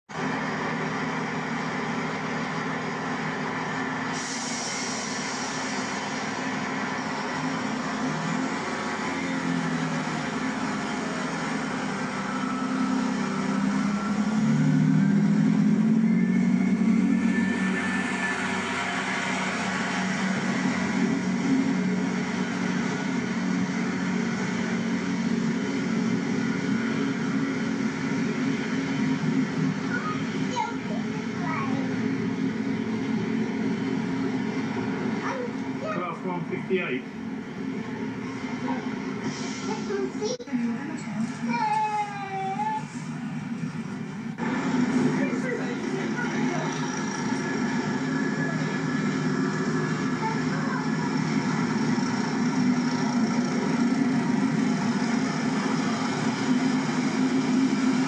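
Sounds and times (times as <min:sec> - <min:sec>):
train diesel engines droning: 0:00.1 - 0:58.0.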